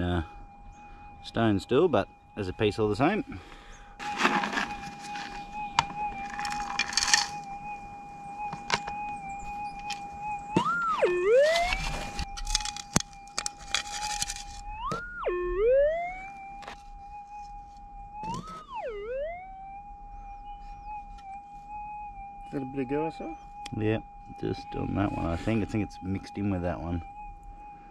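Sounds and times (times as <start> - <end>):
metal detector threshold hum: 0.7 - 27.3
metal detector target signal: 2.4 - 7.5, 8.4 - 16.1, 22.5 - 27.0
dirt scraping and pouring: 4.0 - 7.4.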